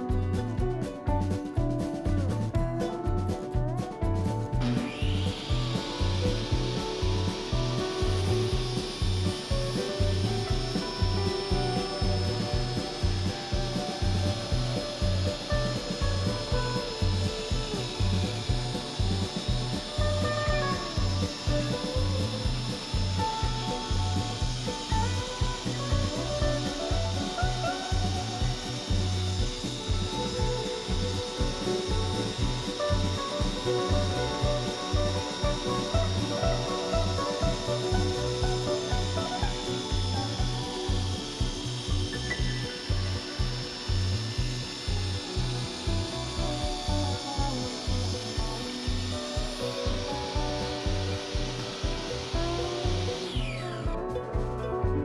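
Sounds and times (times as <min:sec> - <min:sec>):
table saw cutting wood: 0:00.0 - 0:54.3
background music with steady beat: 0:00.0 - 0:55.0.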